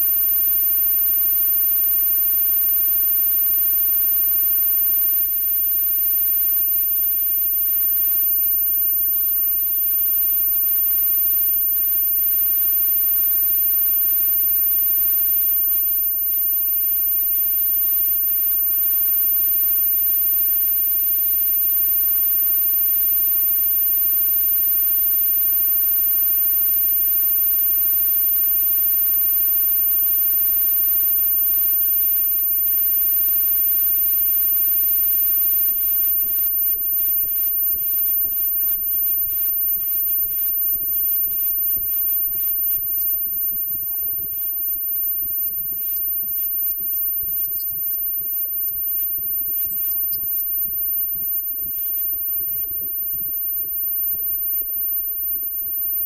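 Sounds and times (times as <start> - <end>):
mains hum and hiss: 0.0 - 56.0.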